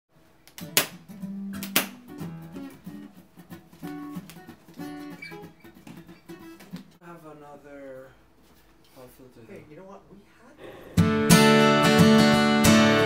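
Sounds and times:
acoustic guitar strumming and picking: 0.6s - 7.0s, 11.0s - 13.0s.

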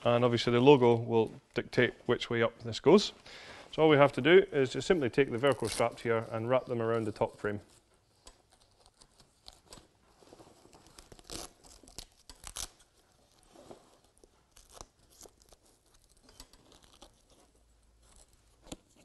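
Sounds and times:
fabric rustling: 7.0s - 19.0s
hook-and-loop strap ripping: 8.1s - 19.0s.

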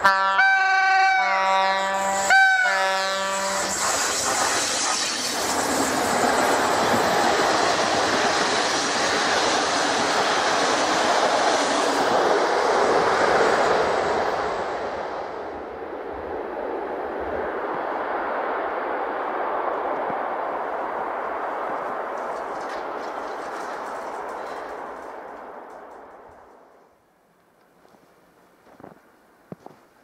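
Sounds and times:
locomotive horn blast: 0.0s - 3.8s
train wheels on rails: 0.0s - 27.0s.

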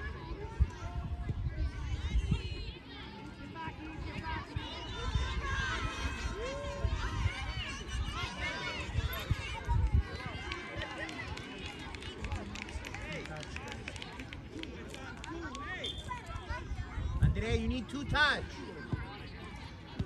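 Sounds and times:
wind rumble on microphone: 0.0s - 2.8s, 3.9s - 10.9s, 16.5s - 17.8s.

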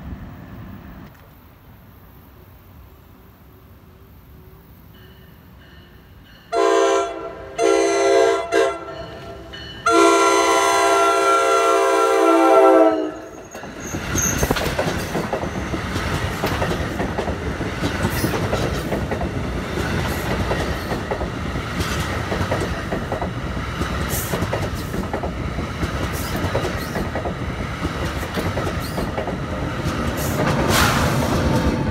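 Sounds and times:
train coaches rumbling past: 0.0s - 31.9s
train horn blasts: 6.5s - 13.4s.

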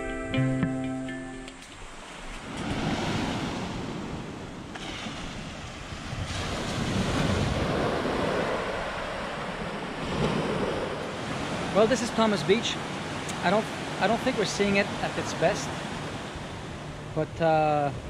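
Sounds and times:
wind on microphone: 1.6s - 11.8s.

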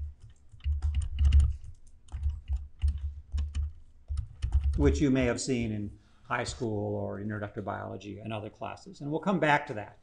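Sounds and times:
stylus tapping on tablet screen: 0.1s - 4.8s.

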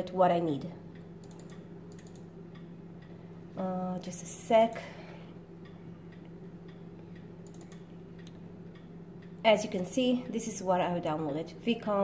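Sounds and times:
low electrical hum: 0.0s - 12.0s
computer mouse clicks: 1.0s - 2.3s, 7.4s - 8.4s.

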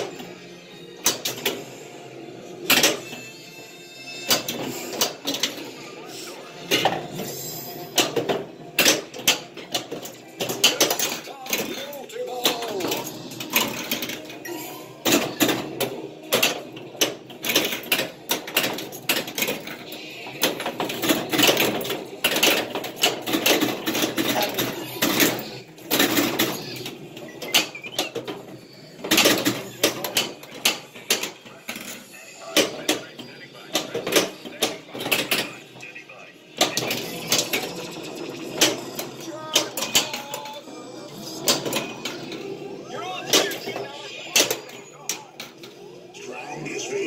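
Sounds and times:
pinball flippers and balls clacking: 0.0s - 46.0s
pinball game sounds: 0.0s - 47.0s.

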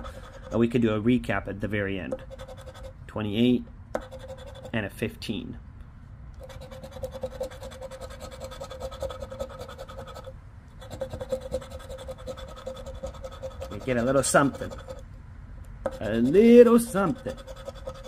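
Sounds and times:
coin scraping scratch-off ticket: 10.9s - 15.0s, 15.9s - 18.0s.

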